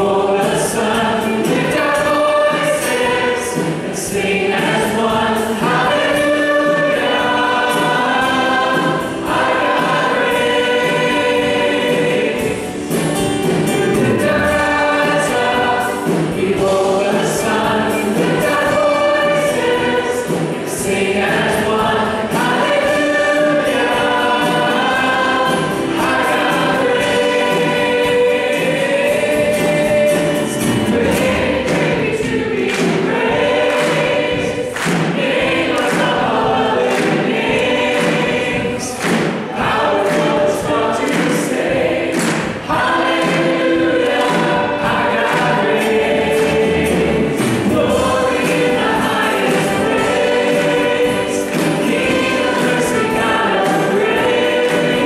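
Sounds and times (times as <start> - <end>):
acoustic guitar: 0.0 - 55.0
keyboard: 0.0 - 55.0
percussion hits: 0.0 - 55.0
voices singing: 0.0 - 55.0.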